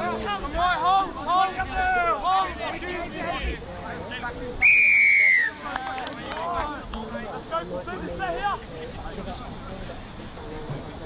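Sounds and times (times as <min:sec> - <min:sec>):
referee's whistle blast: 0:04.6 - 0:05.6.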